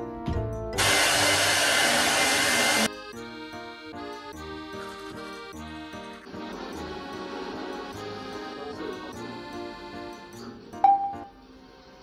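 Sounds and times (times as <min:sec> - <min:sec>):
hair dryer blowing: 0:00.8 - 0:02.9.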